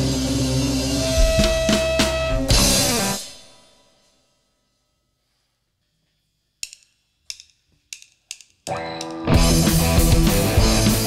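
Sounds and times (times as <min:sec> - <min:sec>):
electric guitar: 0:00.0 - 0:03.4, 0:08.7 - 0:11.0
rock band playing: 0:00.0 - 0:03.4, 0:08.7 - 0:11.0
drumstick count-in clicks: 0:06.6 - 0:09.2.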